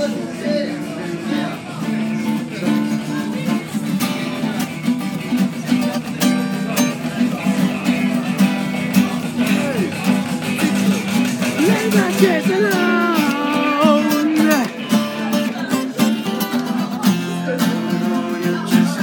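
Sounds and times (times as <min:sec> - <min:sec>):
acoustic guitars strumming chords: 0:00.0 - 0:19.0.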